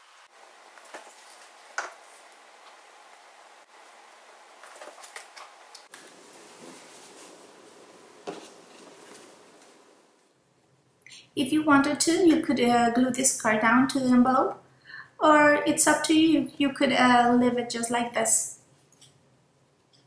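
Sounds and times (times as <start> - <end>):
paper rustling: 0.7 - 2.3, 4.6 - 7.6.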